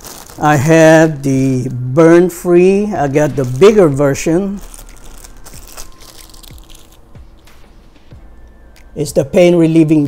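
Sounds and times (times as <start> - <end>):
plastic bag crinkling: 0.0 - 1.5, 2.9 - 7.4.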